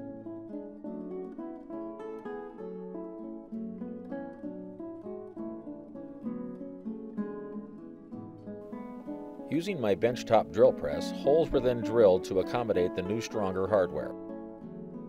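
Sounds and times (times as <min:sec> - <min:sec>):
acoustic guitar plucking: 0:00.0 - 0:15.0.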